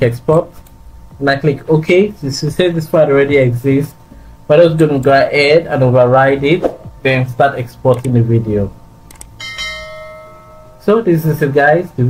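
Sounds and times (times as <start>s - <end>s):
notification bell chime: 9.4s - 10.9s.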